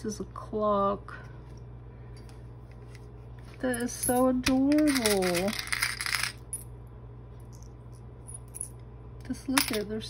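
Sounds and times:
metal charms clinking: 3.7 - 6.4.

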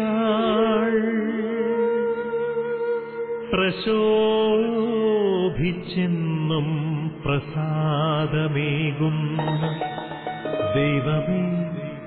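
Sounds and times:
person singing with vibrato: 3.5 - 12.0
instrumental backing: 9.4 - 12.0.

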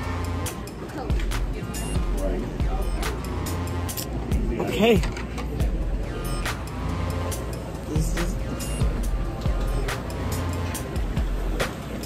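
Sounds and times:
background music: 0.0 - 12.0
murmur of voices: 0.0 - 12.0.

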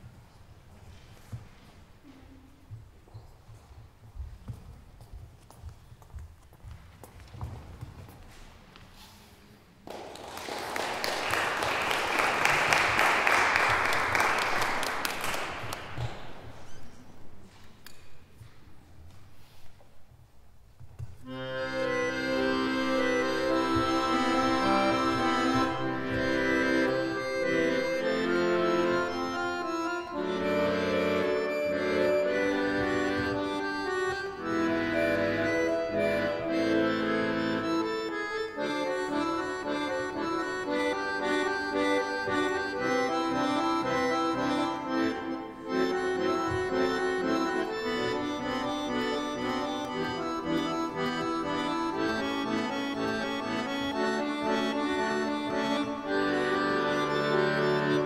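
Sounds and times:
accordion music: 10.8 - 16.1, 21.2 - 58.0.

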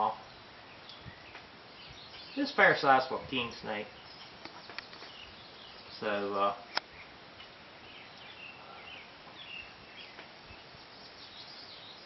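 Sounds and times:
birds chirping and whistling: 0.0 - 12.0
outdoor background hiss: 0.0 - 12.0.

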